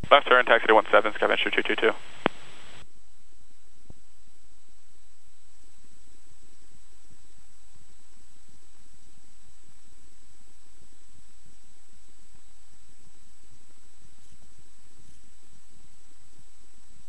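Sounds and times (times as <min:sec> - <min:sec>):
radio hiss: 0:00.0 - 0:02.8
radio transmission click: 0:00.0 - 0:02.8
faint high whine: 0:00.0 - 0:17.0.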